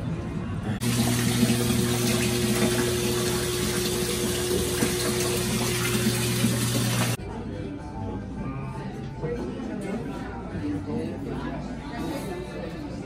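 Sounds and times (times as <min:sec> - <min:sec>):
faucet water rushing into tub: 0:00.8 - 0:07.2.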